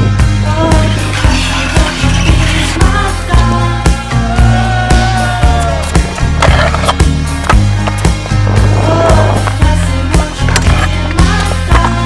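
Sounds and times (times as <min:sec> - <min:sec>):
music with beat and bass: 0:00.0 - 0:12.0
scooter scraping: 0:00.7 - 0:03.5, 0:05.8 - 0:12.0
scooter wheels rolling on paving: 0:00.8 - 0:03.0, 0:05.9 - 0:09.7.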